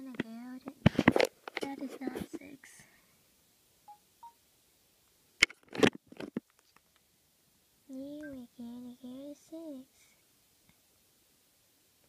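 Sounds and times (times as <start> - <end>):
electronic menu beeps: 3.9 - 4.4.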